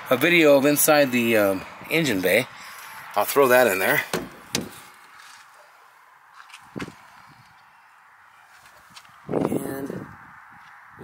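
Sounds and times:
man's voice: 0:03.2 - 0:04.3
knock: 0:04.1 - 0:04.8.

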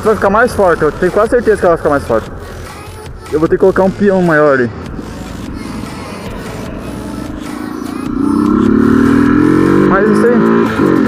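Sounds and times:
motorcycle engine accelerating: 0:04.0 - 0:11.0.

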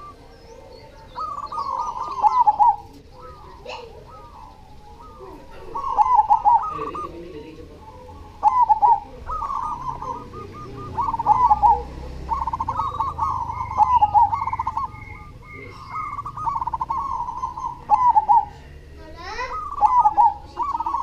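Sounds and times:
dove cooing: 0:00.0 - 0:21.0.

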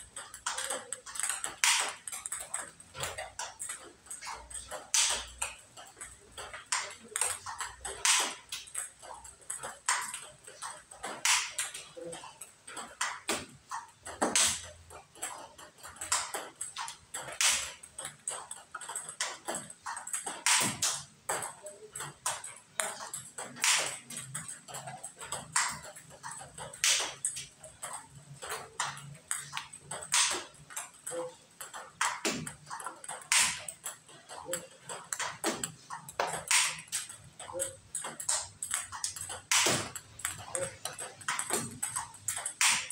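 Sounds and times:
ping pong ball clacks: 0:00.0 - 0:42.9.

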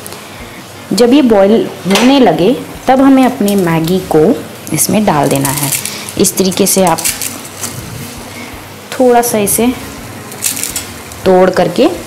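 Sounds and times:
noodles crackling: 0:04.7 - 0:08.2, 0:10.3 - 0:11.3.

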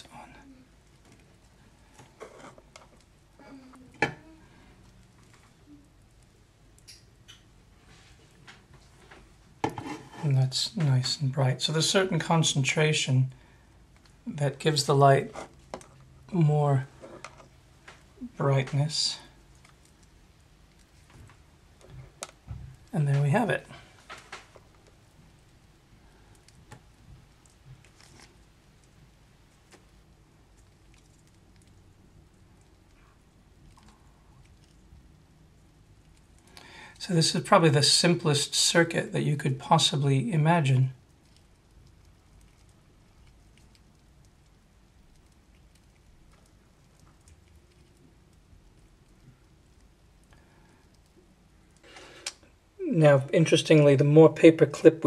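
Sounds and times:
low steady hum: 0:00.0 - 0:55.0
faint clicks and taps: 0:15.4 - 0:16.1, 0:17.0 - 0:36.8.

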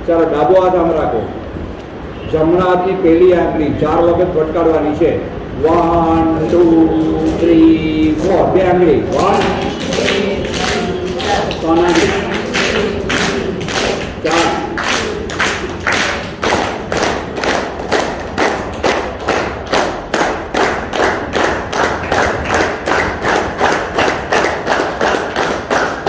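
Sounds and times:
rhythmic hand clapping: 0:05.7 - 0:26.0.

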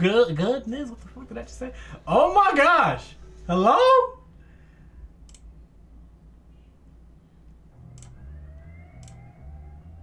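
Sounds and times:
computer mouse click: 0:05.2 - 0:05.5, 0:07.9 - 0:08.2, 0:09.0 - 0:09.2.

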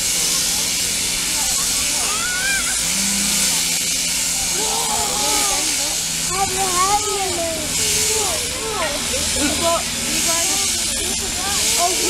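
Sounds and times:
sheep-shearing handpiece hissing: 0:00.0 - 0:12.0.

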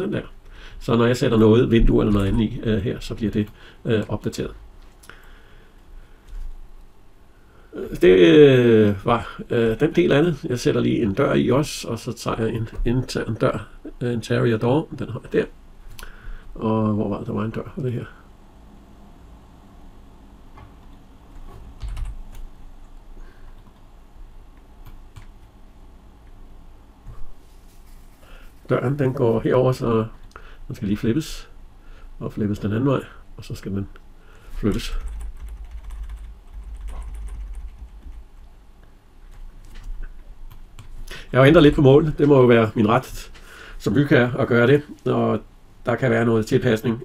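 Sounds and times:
low room hum: 0:00.0 - 0:47.0
keyboard keys clicking: 0:34.7 - 0:38.2.

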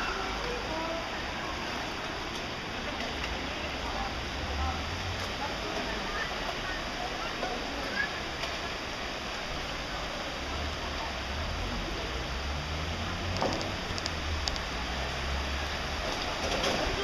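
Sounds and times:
floodwater rushing along street: 0:00.0 - 0:17.0.

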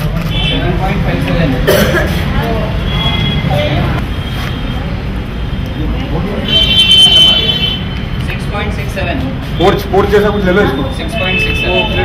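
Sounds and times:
road traffic rumble: 0:00.0 - 0:12.0
vehicle horn: 0:06.4 - 0:07.9, 0:11.2 - 0:12.0.

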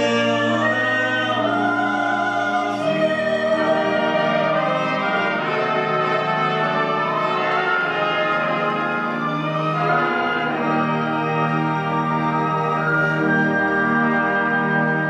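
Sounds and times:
orchestra playing slow chords: 0:00.0 - 0:15.0.

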